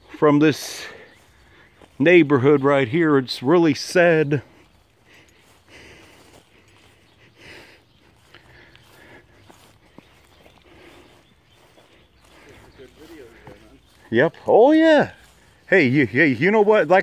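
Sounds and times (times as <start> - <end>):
footsteps through grass: 0.0 - 17.0
leaves rustling: 0.8 - 17.0.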